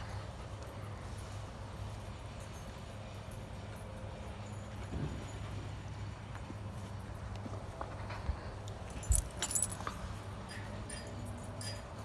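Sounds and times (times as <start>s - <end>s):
metallic jingles and clicks: 0.0s - 12.0s.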